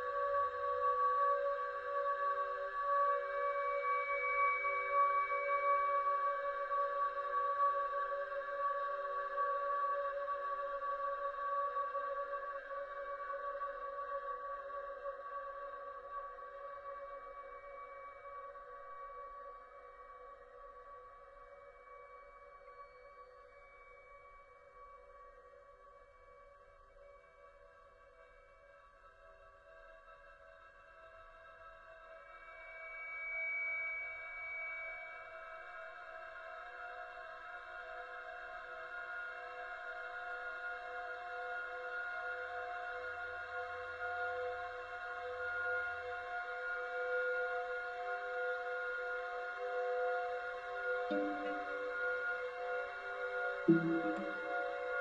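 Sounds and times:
brief high note: 0:51.1 - 0:51.9, 0:53.7 - 0:54.6
chamber music sustained tones: 0:51.1 - 0:55.0.

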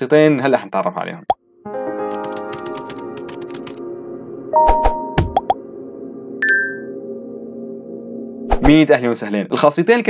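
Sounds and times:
bright ringing chime: 0:06.4 - 0:07.0.

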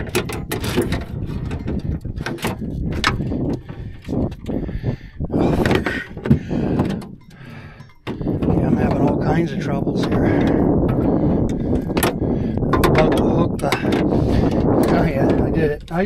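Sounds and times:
knocks and clunks: 0:00.0 - 0:16.0.

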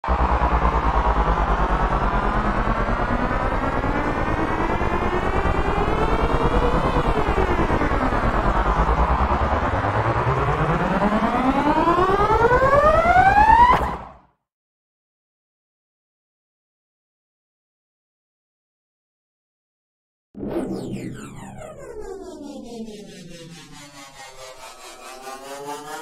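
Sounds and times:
low pulsing rumble: 0:00.0 - 0:13.3
rising pitched tones: 0:00.0 - 0:14.2, 0:20.4 - 0:26.0.

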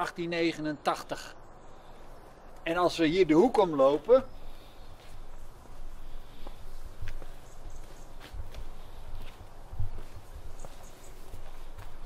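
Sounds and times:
footsteps on bricks and dry leaves: 0:01.8 - 0:12.0.

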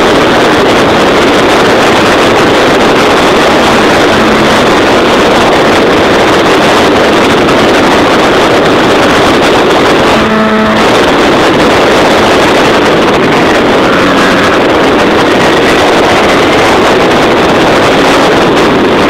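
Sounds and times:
aircraft engine and propeller: 0:00.0 - 0:19.0
brief pitched tone: 0:03.5 - 0:05.4, 0:10.1 - 0:11.2, 0:13.3 - 0:14.9.

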